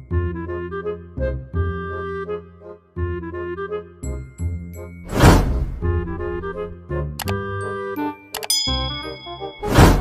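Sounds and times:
background music: 0.0 - 10.0
loud whoosh: 5.1 - 6.7
bright bell ding: 8.4 - 10.0.

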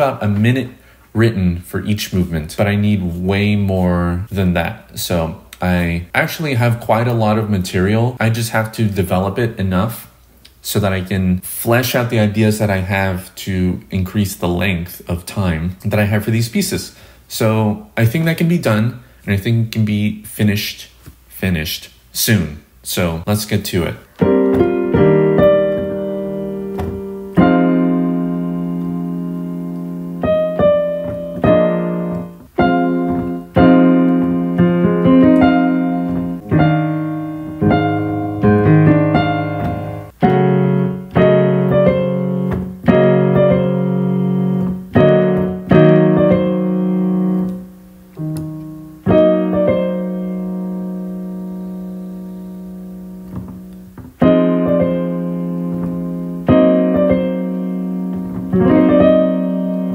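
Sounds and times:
digital piano chords: 23.7 - 59.9.

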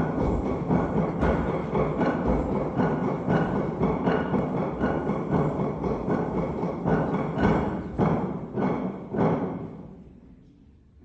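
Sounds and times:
steady beat of thumps: 0.0 - 10.0.

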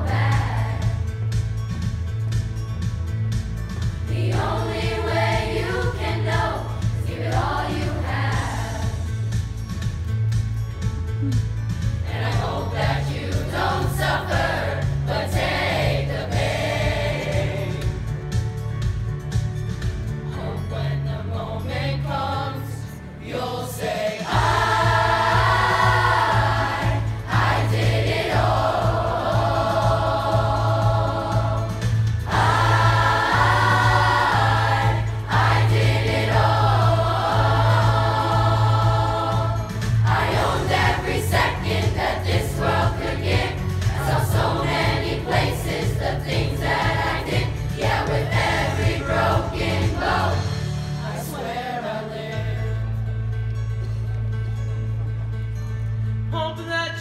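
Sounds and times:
children's chorus singing: 0.0 - 1.1, 4.0 - 9.1, 12.1 - 17.8, 20.4 - 52.3.

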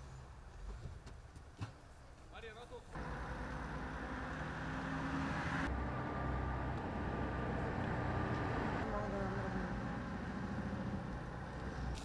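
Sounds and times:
vehicle engine rumbling: 3.0 - 12.0.

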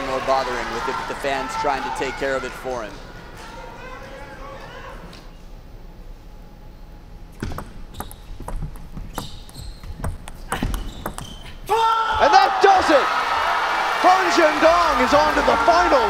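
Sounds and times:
crowd cheering and shouting: 0.0 - 4.8, 11.7 - 16.0
table tennis ball clicking: 7.4 - 11.2.

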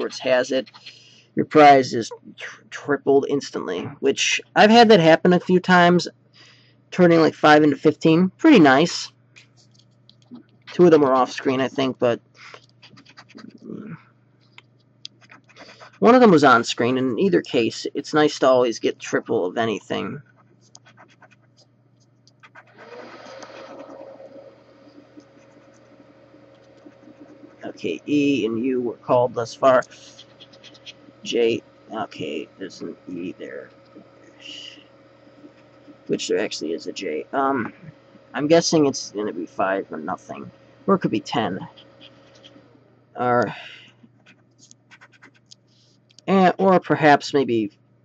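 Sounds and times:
scratching a scratch-off ticket: 12.4 - 13.9, 15.1 - 34.8, 41.0 - 42.6, 43.8 - 45.8.

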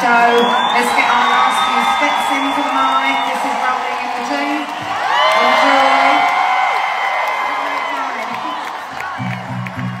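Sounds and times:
crowd screaming and cheering: 0.0 - 10.0.

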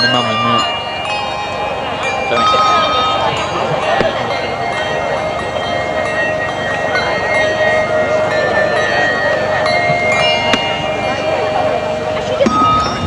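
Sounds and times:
crowd chatter: 0.0 - 13.0
handbells ringing: 0.0 - 13.0.

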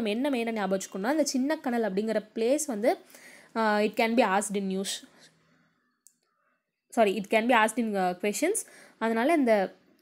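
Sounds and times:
woman speaking: 0.0 - 5.3, 6.9 - 9.9.

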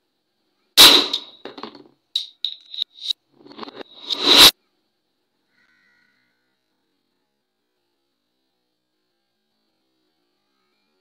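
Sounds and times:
gas explosion bang: 0.8 - 1.6
metal tumbler clattering: 0.8 - 4.2.

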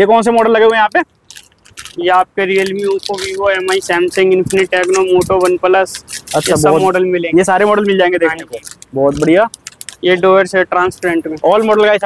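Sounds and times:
man speaking: 0.0 - 1.1, 2.0 - 12.0
plastic packets clicking and rattling: 0.7 - 6.9, 7.7 - 10.2.

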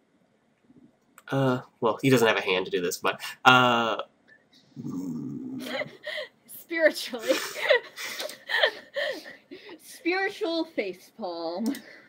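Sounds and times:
person talking: 1.2 - 4.0
person's low drawn-out vocal sound: 4.8 - 5.9.

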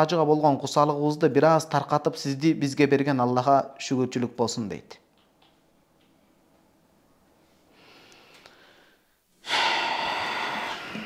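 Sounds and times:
man breathing in loudly: 7.7 - 11.0.

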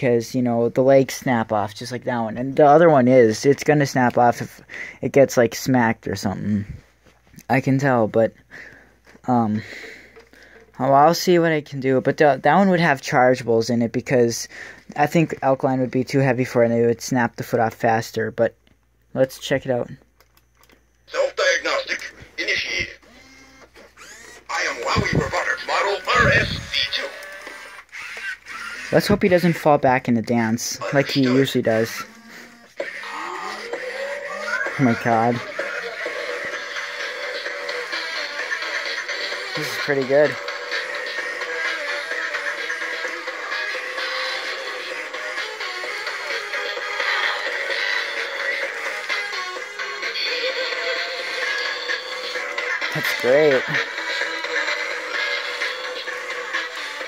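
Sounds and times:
toy robot vocal burst: 23.0 - 29.2, 30.8 - 49.8
robot arm motors whirring: 23.1 - 25.3, 26.1 - 29.1.

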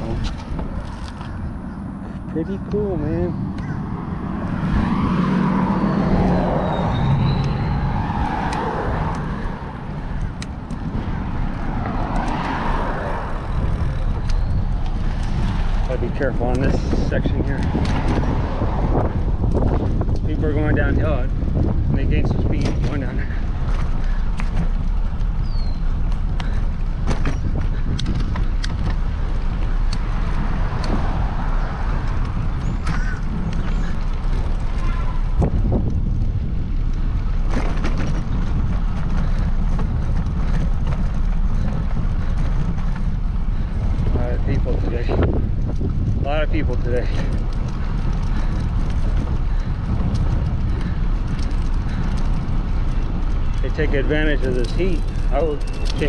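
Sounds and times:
traffic passing: 0.0 - 56.0
wind rumble on microphone: 0.0 - 56.0.

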